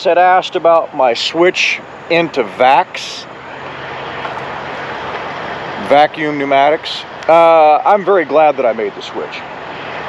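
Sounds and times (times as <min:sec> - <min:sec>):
trucks passing on road: 0:00.0 - 0:10.0.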